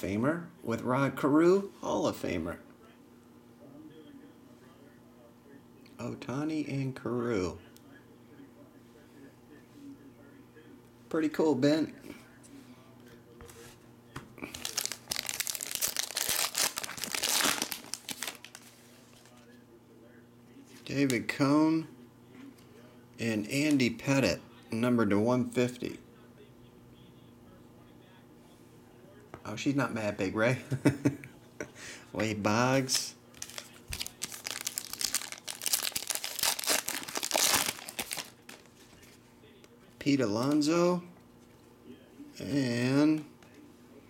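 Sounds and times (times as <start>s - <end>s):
foil wrapper tearing and crumpling: 14.4s - 19.3s, 33.3s - 38.8s.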